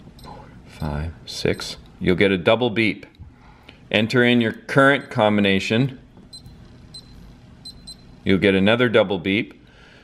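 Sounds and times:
keypad lock beeps: 6.3s - 8.2s.

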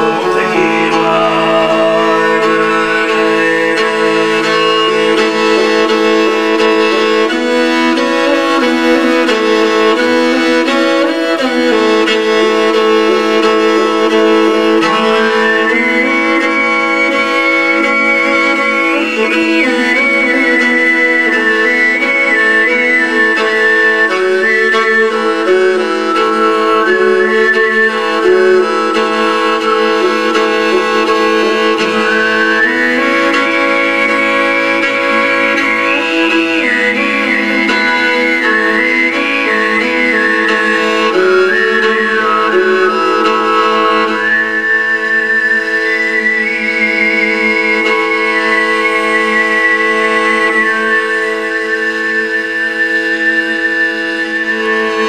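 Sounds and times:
overtone throat singing: 0.0s - 5.4s.

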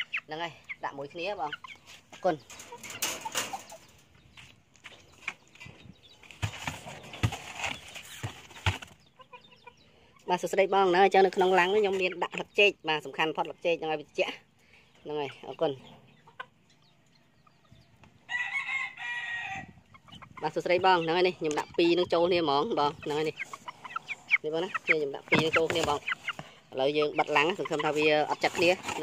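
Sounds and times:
chickens clucking: 0.0s - 29.0s
chickens tapping: 1.5s - 9.3s, 20.4s - 29.0s
rooster crowing: 18.3s - 19.7s.

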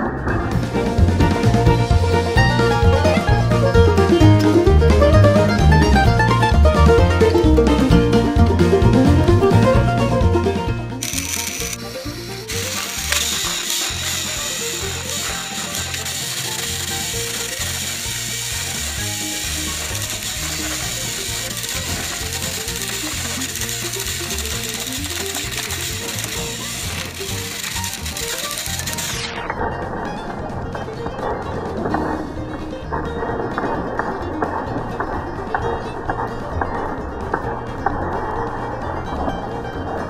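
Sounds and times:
background music: 0.0s - 40.0s
toy train motors whirring and grinding: 11.0s - 29.5s.

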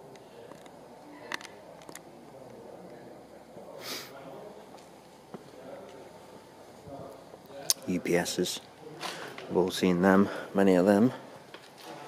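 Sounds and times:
sharp puff of breath through nose: 3.8s - 4.1s.

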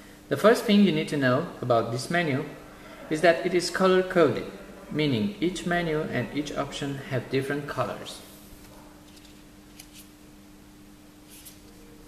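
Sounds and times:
steady low hum: 0.0s - 12.0s
paper leaflet rustling: 8.6s - 10.1s.

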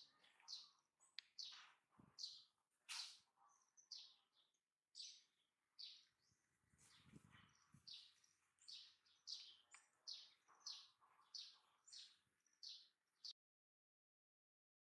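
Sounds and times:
faint birds chirping: 0.0s - 13.4s.

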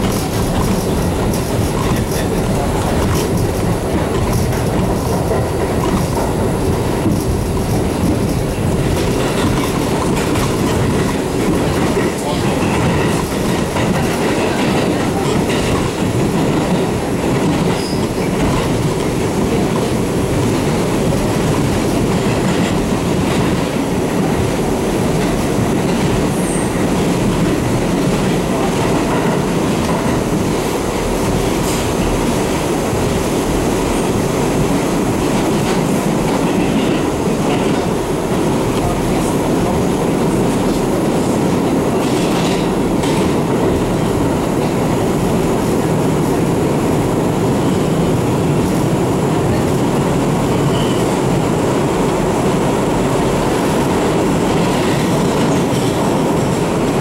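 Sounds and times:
clacks over rail joints: 0.0s - 32.6s, 34.0s - 45.0s
subway train wheels rumbling: 0.0s - 57.0s.

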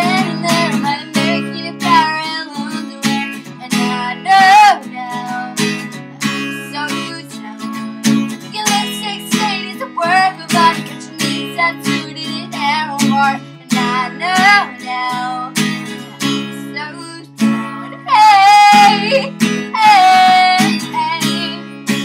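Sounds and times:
acoustic guitar strumming: 0.0s - 22.0s
woman singing: 0.0s - 22.0s.

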